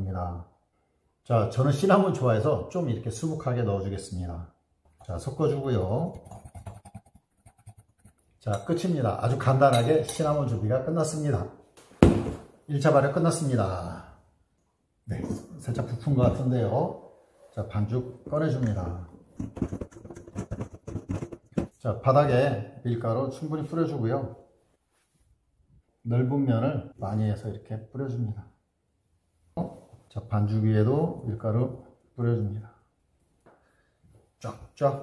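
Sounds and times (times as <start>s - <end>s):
spoon scraping in ceramic bowl: 5.0s - 10.4s, 19.4s - 21.7s.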